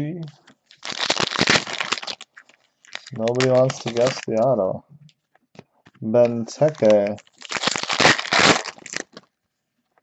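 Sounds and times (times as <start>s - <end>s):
foil wrapper crinkling: 0.6s - 4.4s, 6.2s - 9.3s.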